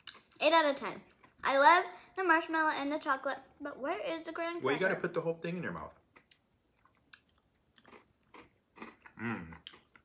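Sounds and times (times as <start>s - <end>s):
faint crunching while chewing: 6.1s - 10.0s.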